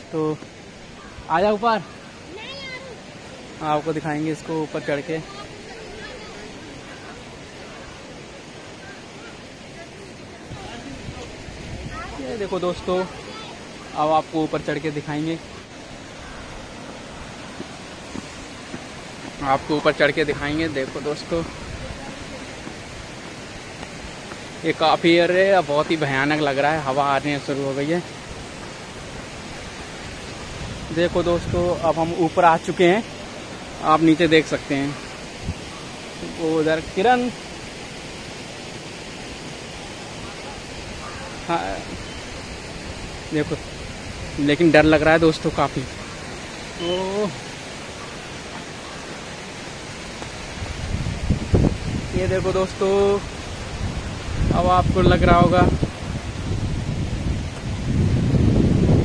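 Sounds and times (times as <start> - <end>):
wind on microphone: 10.3 - 12.4, 28.2 - 32.1, 35.1 - 36.1, 49.3 - 59.0.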